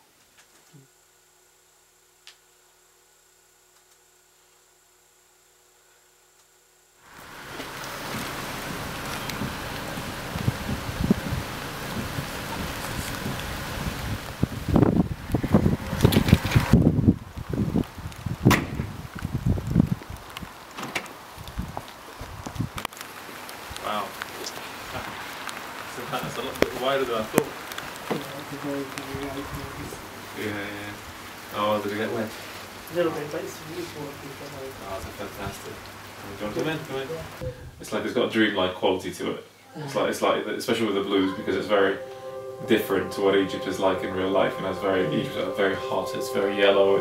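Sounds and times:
faint steady hum: 0.0 - 18.4.

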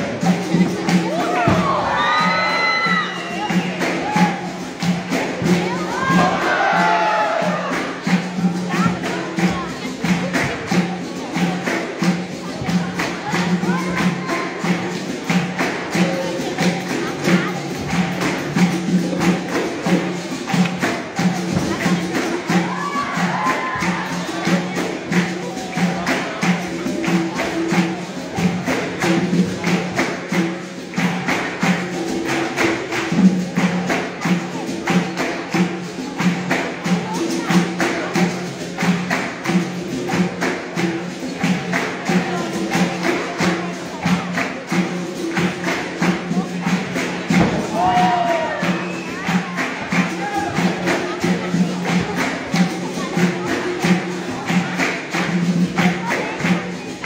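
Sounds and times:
atabaque drum beat: 0.0 - 57.0
berimbaus playing rhythm: 0.0 - 57.0.

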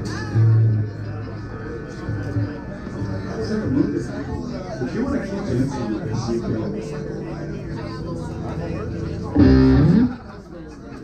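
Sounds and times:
electric guitar chord sliding up: 9.4 - 10.2.

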